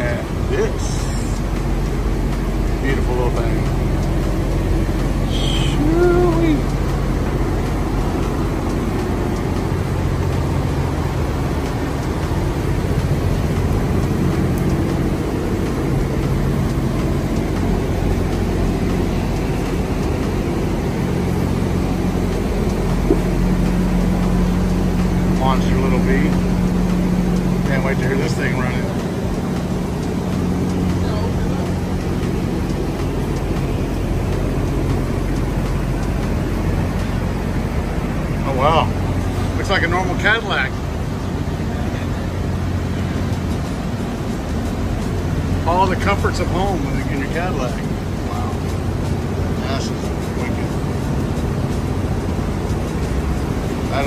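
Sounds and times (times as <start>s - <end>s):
engine droning: 0.0s - 54.0s.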